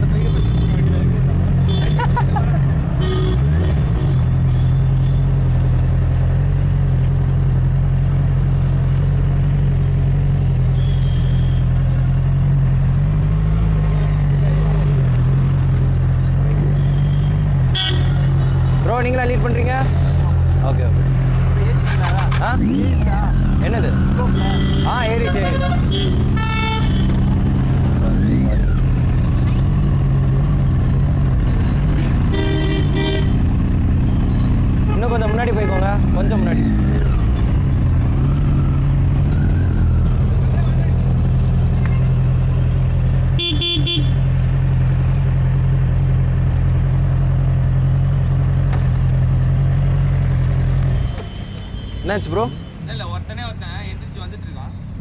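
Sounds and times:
vehicle horns tooting: 1.6 - 2.0, 3.0 - 5.4, 10.7 - 11.8, 16.7 - 18.4, 24.0 - 27.2, 32.0 - 33.5, 34.8 - 36.2, 43.4 - 44.3, 50.9 - 52.9
motorcycle engine running: 21.8 - 50.6.

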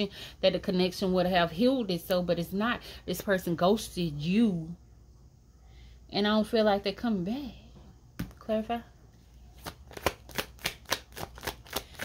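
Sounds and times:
cards being shuffled: 9.5 - 12.0.

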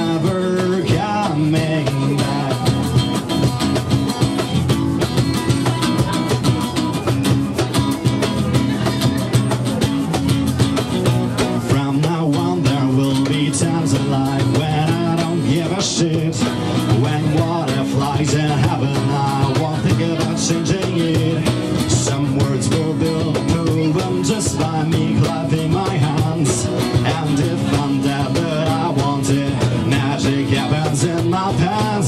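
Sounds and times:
acoustic guitar strumming: 0.0 - 32.0
cajon beat: 0.0 - 32.0.

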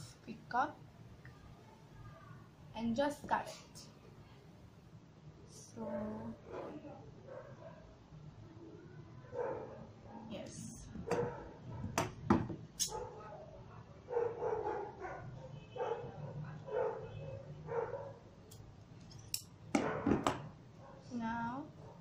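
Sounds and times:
dog barking: 6.5 - 7.8, 9.3 - 10.3, 11.0 - 12.0, 12.9 - 18.2.

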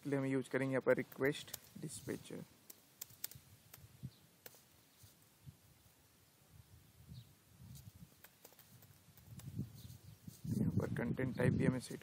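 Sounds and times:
faint keyboard typing clicks: 2.6 - 3.8, 8.2 - 9.6.

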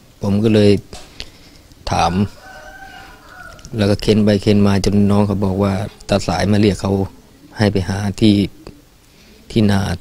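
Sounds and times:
rooster crowing: 1.9 - 4.1.

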